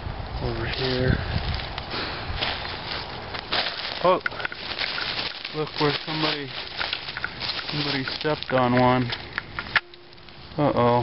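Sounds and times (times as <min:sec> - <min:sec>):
footsteps crunching through dry leaves: 0:00.4 - 0:09.4.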